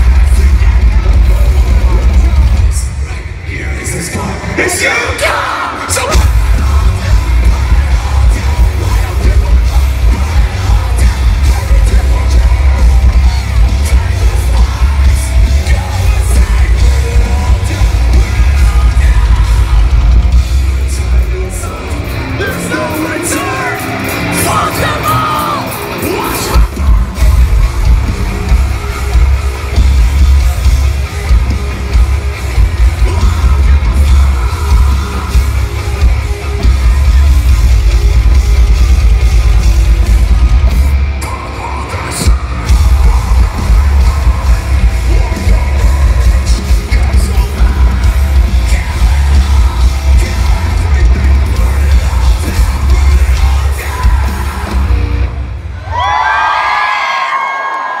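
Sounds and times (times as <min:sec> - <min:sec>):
metalcore band playing live: 0:00.0 - 0:57.5
crowd yelling: 0:00.0 - 0:58.0
screamed vocals: 0:24.4 - 0:26.6, 0:55.8 - 0:58.0.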